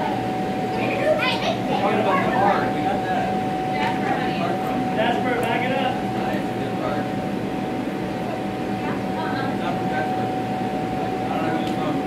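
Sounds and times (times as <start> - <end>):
children chattering: 0.0 - 5.2
electric blower fans droning: 0.0 - 12.0.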